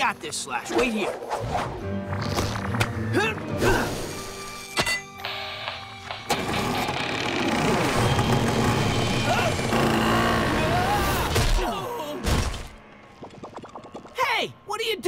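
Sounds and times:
cartoon background music: 0.0 - 6.8.

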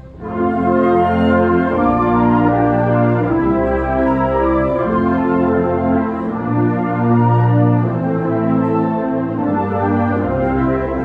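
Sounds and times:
wind band playing chords: 0.0 - 11.0.

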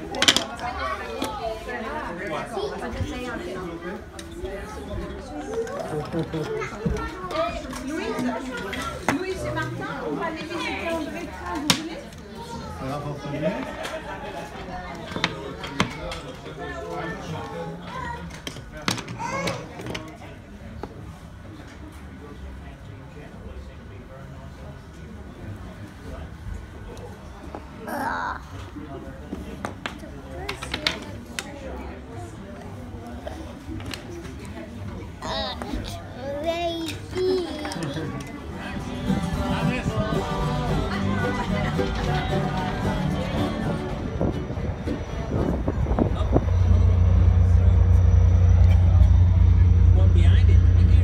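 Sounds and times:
chatter of adults and children: 0.0 - 51.0.

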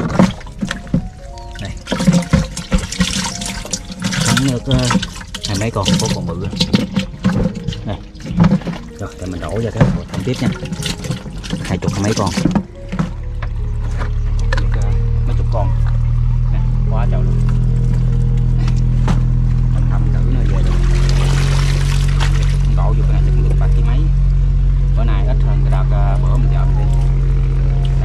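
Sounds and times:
water splash: 0.0 - 13.3, 17.3 - 23.0
boat motor droning: 0.0 - 28.0.

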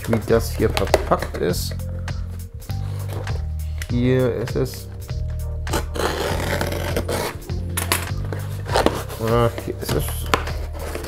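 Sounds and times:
background music: 0.0 - 11.0
paper parcel rustling and scraping: 5.7 - 11.0.

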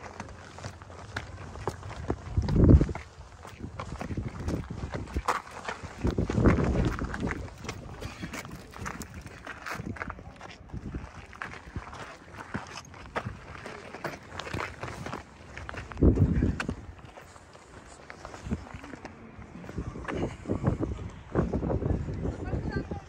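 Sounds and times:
footsteps crunching on rock: 0.0 - 19.1
faint voices: 6.6 - 23.0.

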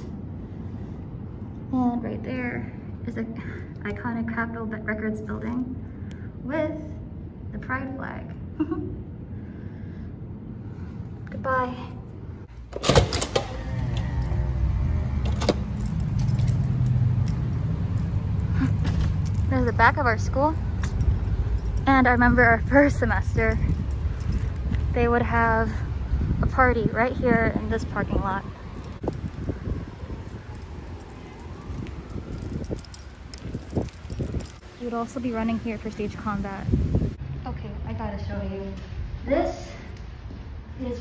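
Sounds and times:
low rumble of traffic: 0.0 - 41.0
door creaking: 12.7 - 16.8.

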